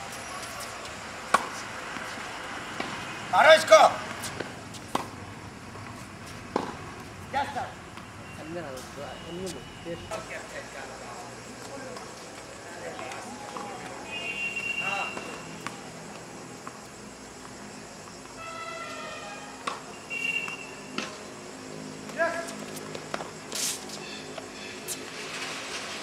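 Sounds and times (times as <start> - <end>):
tennis ball struck by rackets: 1.3 - 1.6, 4.1 - 5.2, 6.5 - 6.8.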